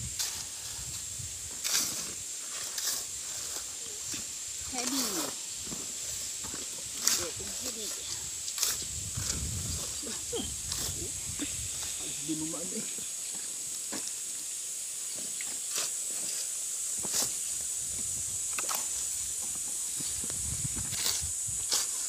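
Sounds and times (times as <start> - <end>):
shovels scraping wet cement: 1.6 - 12.7, 20.9 - 22.0.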